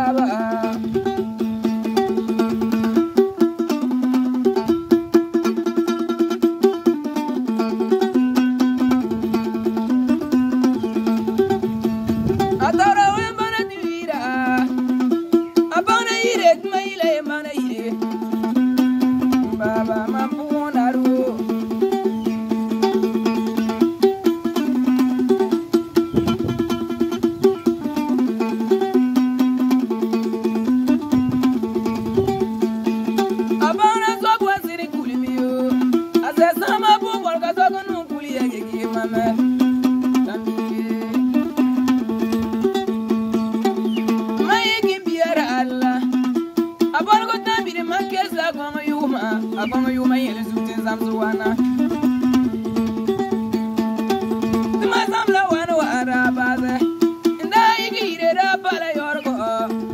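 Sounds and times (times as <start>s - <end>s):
man singing: 0.0s - 1.0s, 12.6s - 15.0s, 15.7s - 21.8s, 33.6s - 41.9s, 44.3s - 52.3s, 54.6s - 59.9s
plucked two-string lute riff: 0.0s - 59.9s.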